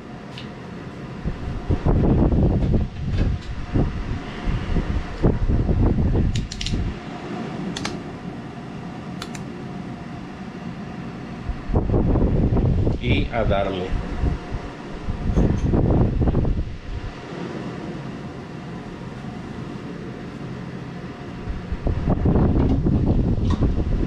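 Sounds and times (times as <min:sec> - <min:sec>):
fan hum: 0:00.0 - 0:24.0.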